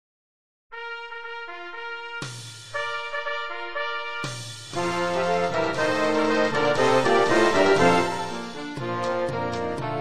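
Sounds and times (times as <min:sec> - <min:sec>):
wind band playing a march: 0:00.8 - 0:10.0.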